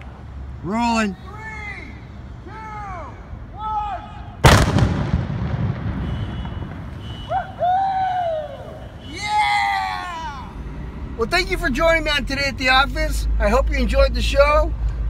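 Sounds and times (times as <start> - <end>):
people calling out: 0.6 - 4.4, 7.0 - 10.6
explosion rumble: 4.4 - 7.3
gasoline explosion blast: 4.4 - 7.3.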